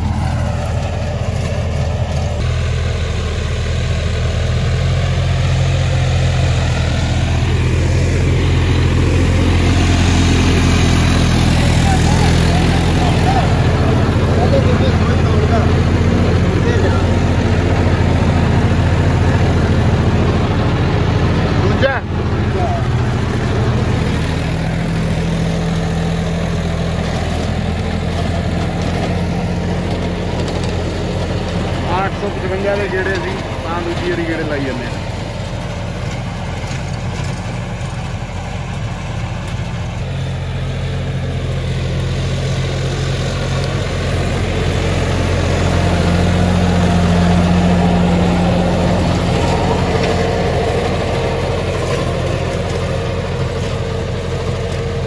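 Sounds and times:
tractor diesel engine under load: 0.0s - 55.0s.

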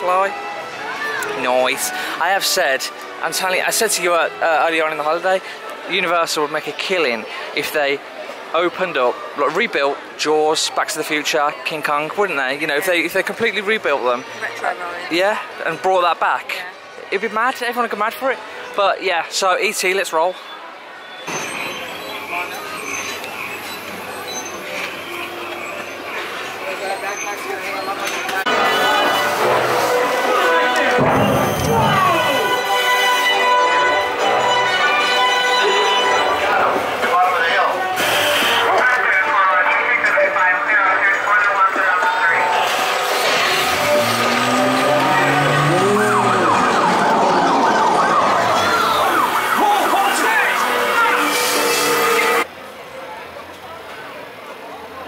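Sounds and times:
babble of distant voices: 0.0s - 55.0s
police sirens wailing: 28.3s - 52.5s.

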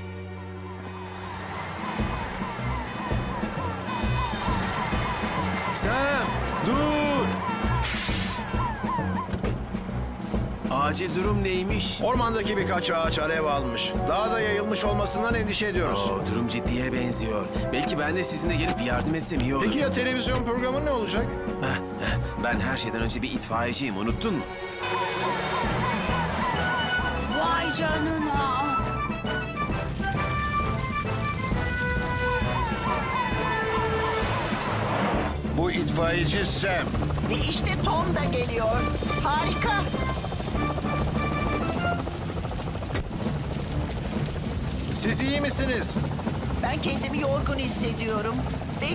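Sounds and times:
fire engine siren: 0.0s - 9.4s, 24.7s - 35.4s, 36.0s - 45.5s
background music: 0.0s - 48.9s
low vehicle rumble: 0.5s - 6.7s.

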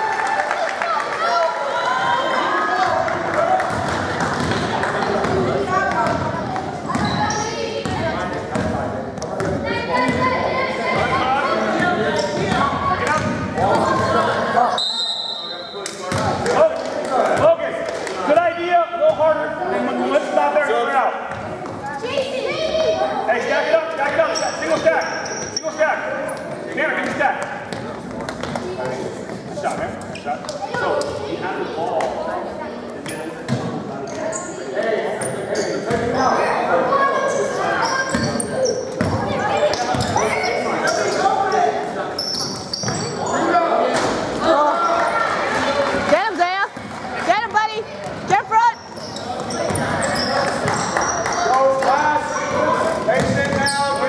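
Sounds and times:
voices of players and spectators: 0.0s - 54.0s.

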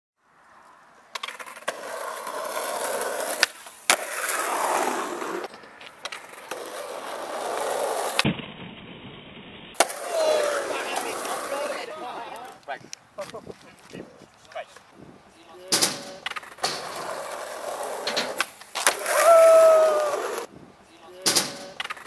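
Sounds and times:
skateboard wheels rolling on asphalt: 0.2s - 20.9s, 21.6s - 22.0s
skateboard tail popping and landing: 1.1s - 11.8s, 15.7s - 20.5s, 21.2s - 22.0s.

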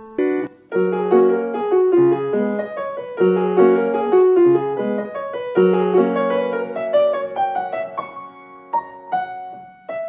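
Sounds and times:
slow gentle piano piece: 0.0s - 10.0s.

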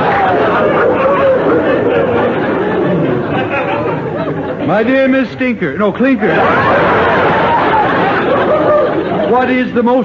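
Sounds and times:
studio audience laughing: 0.0s - 5.2s, 5.9s - 10.0s.

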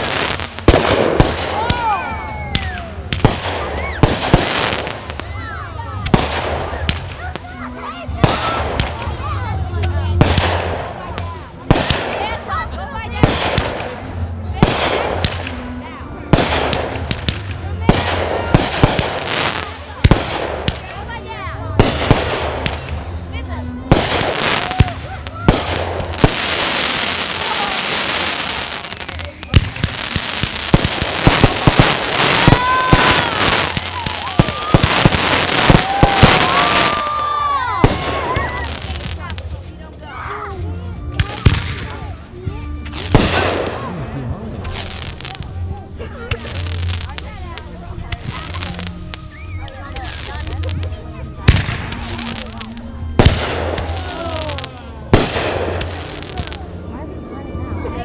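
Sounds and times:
fireworks crackling: 0.0s - 40.0s, 40.6s - 57.0s
fireworks whistling: 23.9s - 39.4s, 51.5s - 56.6s.

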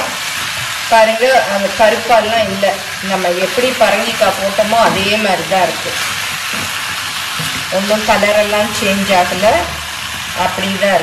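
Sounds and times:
pumpkin sizzling in a pan: 0.0s - 11.0s
person talking: 0.9s - 6.0s, 7.7s - 9.8s.

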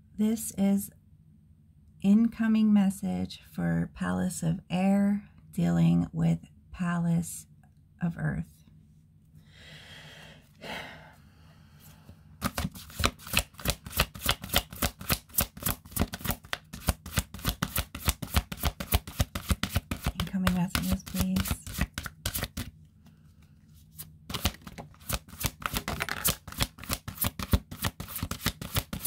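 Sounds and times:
cards being shuffled: 12.4s - 22.8s, 23.4s - 29.0s.

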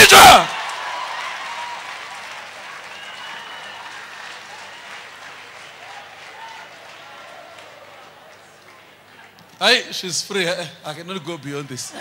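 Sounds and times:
congregation applauding: 0.0s - 9.8s.

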